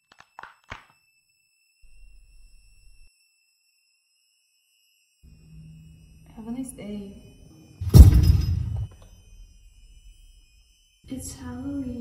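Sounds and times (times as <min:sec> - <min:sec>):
high-pitched whine: 0:05.2 - 0:12.0.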